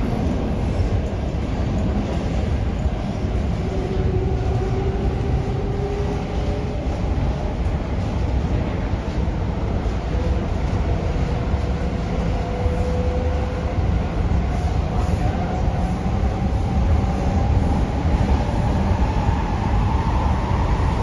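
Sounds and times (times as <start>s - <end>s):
train wheels rumbling on track: 0.0s - 21.0s.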